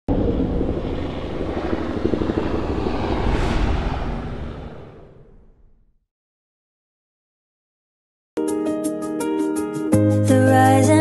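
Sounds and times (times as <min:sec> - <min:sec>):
helicopter rotor and engine: 0:00.1 - 0:05.6.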